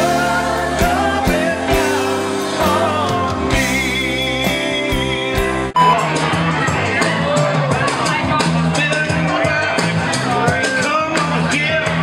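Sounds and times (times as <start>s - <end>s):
person singing: 0.0s - 8.0s
bass line: 0.0s - 10.7s
live rock and roll band: 0.0s - 12.0s.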